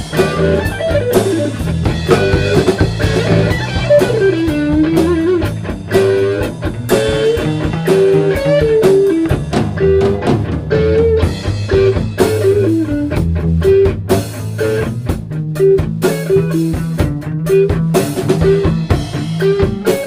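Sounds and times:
bass guitar: 0:00.0 - 0:20.0
drum kit: 0:00.0 - 0:20.0
electric guitar lead: 0:00.0 - 0:20.0.

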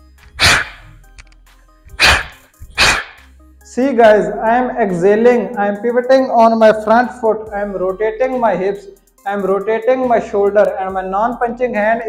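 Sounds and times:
faint background music: 0:00.0 - 0:12.0
sharp hissing exhales: 0:00.4 - 0:00.9, 0:01.9 - 0:03.3.

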